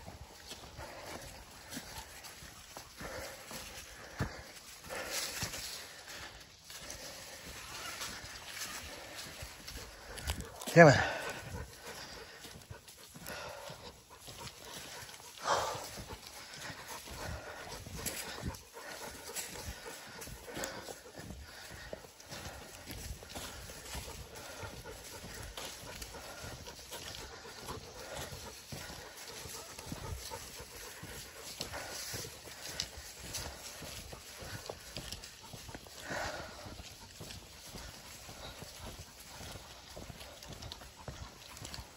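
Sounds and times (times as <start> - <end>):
dog panting: 0.0 - 41.9
footsteps on dirt trail: 0.0 - 41.9.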